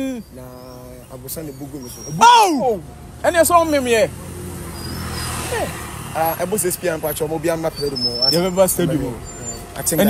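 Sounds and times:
excited talking: 0.0s - 4.2s, 5.5s - 10.0s
road vehicle passing: 0.0s - 10.0s.

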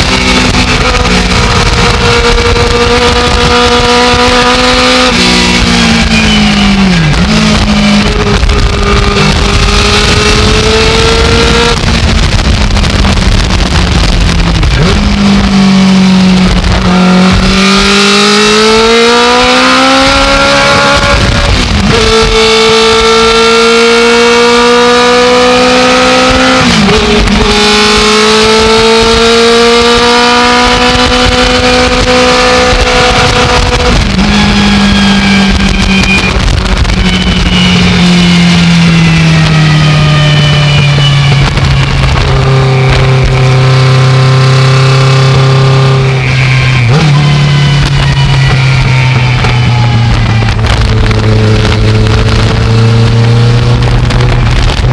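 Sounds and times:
race car engine accelerating: 0.0s - 54.9s.

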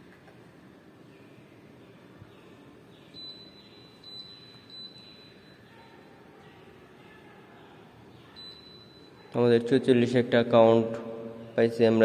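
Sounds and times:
short high-pitched electronic beeps: 3.2s - 5.6s.

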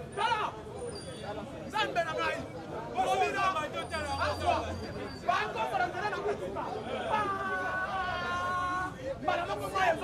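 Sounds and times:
men talking animatedly: 0.0s - 10.0s.

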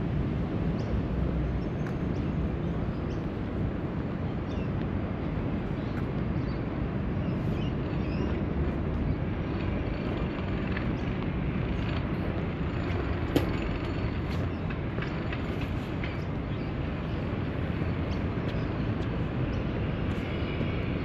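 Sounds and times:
distant city traffic rumble: 0.0s - 21.0s.

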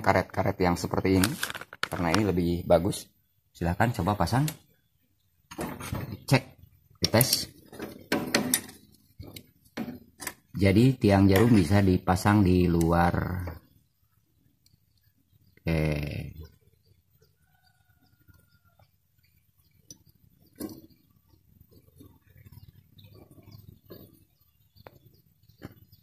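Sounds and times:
faint clicks and taps: 18.2s - 26.0s.

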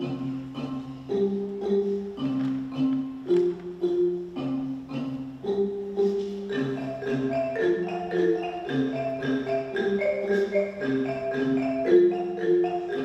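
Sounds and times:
wooden xylophones and marimbas: 0.0s - 13.0s.

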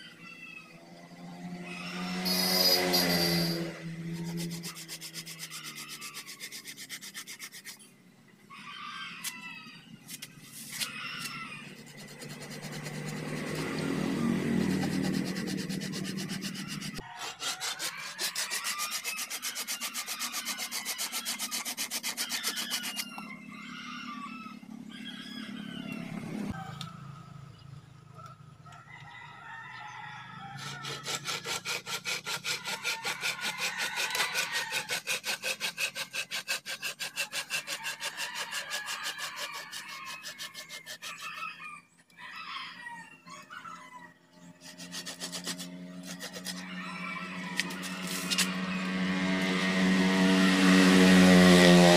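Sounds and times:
hand saw cutting wood: 1.6s - 7.9s, 10.1s - 23.2s, 30.4s - 41.6s, 44.5s - 51.9s.

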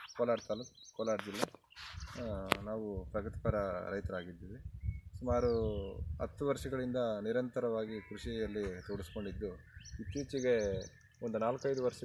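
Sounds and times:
man talking: 0.0s - 1.5s, 2.1s - 12.0s
small birds chirping: 0.0s - 2.8s, 4.0s - 12.0s.

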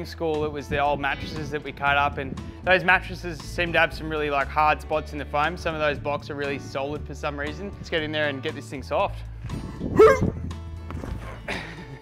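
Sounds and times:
background music: 0.0s - 12.0s
man shouting: 10.0s - 10.3s.

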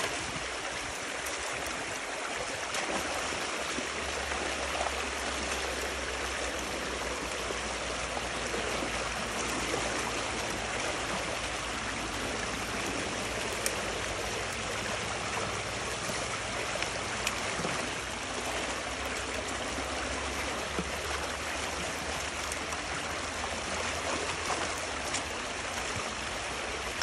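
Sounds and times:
water rushing through a breach: 0.0s - 27.0s.

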